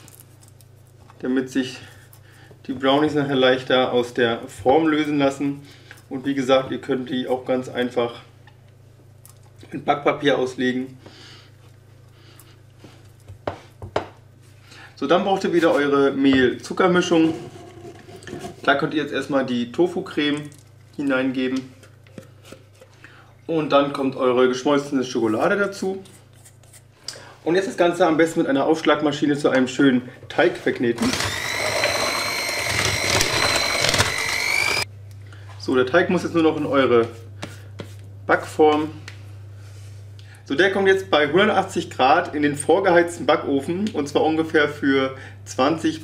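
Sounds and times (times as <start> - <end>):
mixer attachments clicking on bowl: 31.0 - 34.8
electric hand mixer whining: 31.0 - 34.9.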